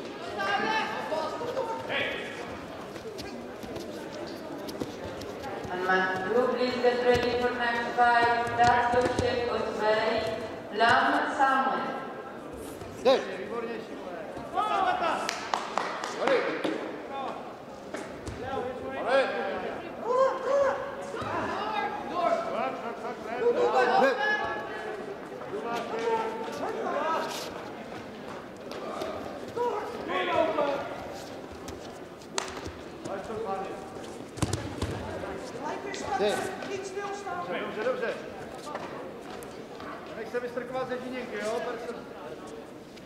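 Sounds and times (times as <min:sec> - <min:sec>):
voices calling out in a hall: 0:00.0 - 0:43.0
loud shouts: 0:20.0 - 0:22.1.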